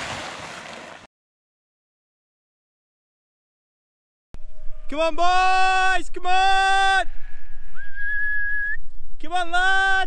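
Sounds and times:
person whistling a steady note: 0:07.7 - 0:08.9.

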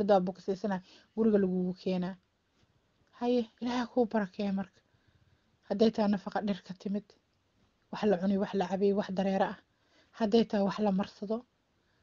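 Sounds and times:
person speaking: 0:03.2 - 0:04.7.

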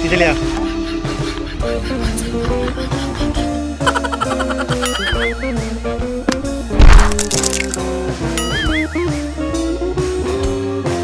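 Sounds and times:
background music: 0:00.0 - 0:11.0
comic crack impact effect: 0:06.8 - 0:07.8.

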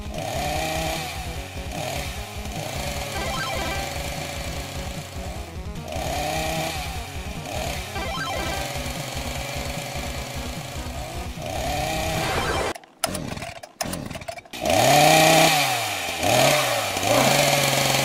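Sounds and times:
background music: 0:00.0 - 0:12.7
chainsaw revving: 0:00.0 - 0:18.0.

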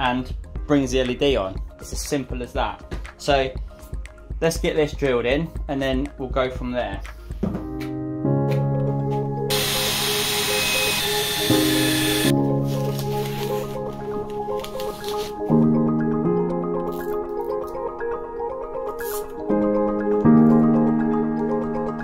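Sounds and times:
cordless drill boring plastic: 0:09.5 - 0:12.3.

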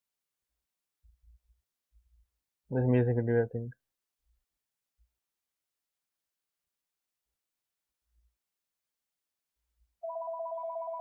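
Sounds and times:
telephone ringing: 0:10.0 - 0:11.0.

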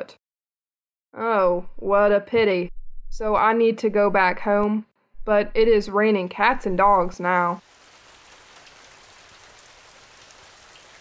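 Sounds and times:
heavy rain falling: 0:07.6 - 0:11.0.

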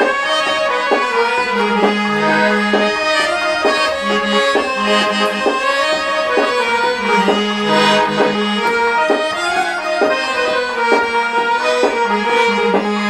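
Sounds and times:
harmonium playing quick melody: 0:00.0 - 0:13.0.

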